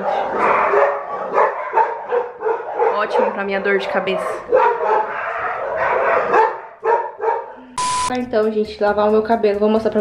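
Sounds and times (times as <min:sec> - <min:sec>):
dog barking: 0:00.0 - 0:07.8
steady beep tone with static: 0:07.8 - 0:08.2.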